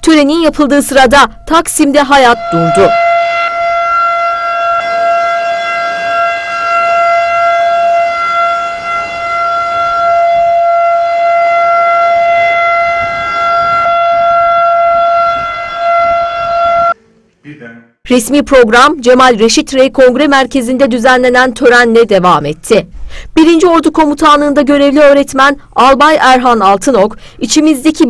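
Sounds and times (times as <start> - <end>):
civil defence siren steady tone: 0.5 - 17.0.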